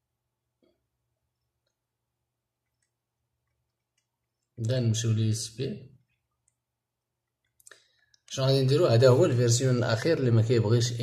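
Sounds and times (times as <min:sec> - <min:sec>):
man speaking: 0:04.6 - 0:06.0, 0:08.3 - 0:11.0.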